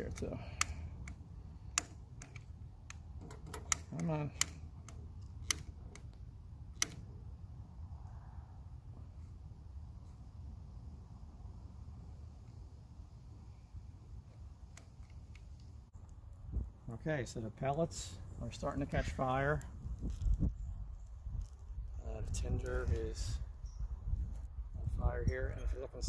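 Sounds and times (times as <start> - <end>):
low fire rumble: 0.0 - 26.0
fire crackling: 12.2 - 16.9, 17.6 - 23.4.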